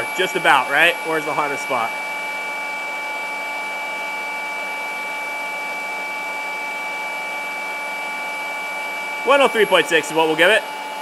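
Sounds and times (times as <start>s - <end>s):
rotary polishers whining: 0.0s - 11.0s.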